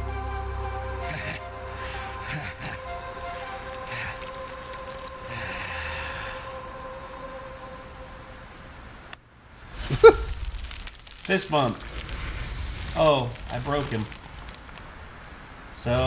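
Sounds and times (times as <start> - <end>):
held drone: 0.0 - 8.7
faint rushing noise: 0.0 - 16.0.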